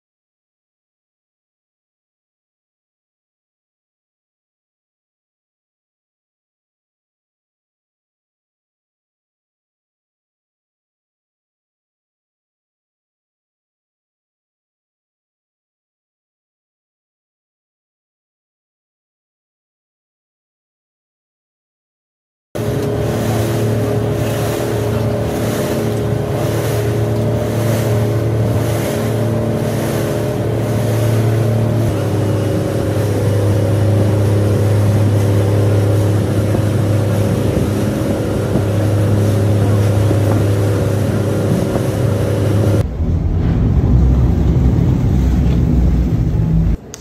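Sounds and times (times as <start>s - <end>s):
rushing water: 22.6s - 46.8s
wind on microphone: 22.6s - 46.8s
boat engine humming: 22.6s - 47.0s.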